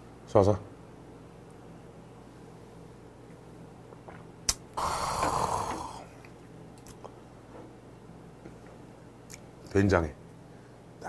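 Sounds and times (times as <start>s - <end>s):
person exhaling raspily: 4.8s - 6.2s.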